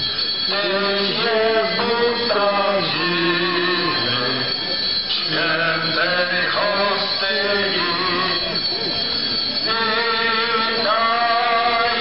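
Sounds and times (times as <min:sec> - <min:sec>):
chant in long held notes: 0:00.5 - 0:12.0.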